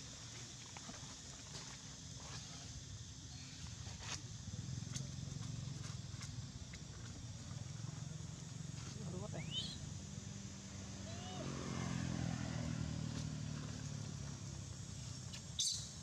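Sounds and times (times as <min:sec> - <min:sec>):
distant vehicle engine humming: 0:07.8 - 0:15.9.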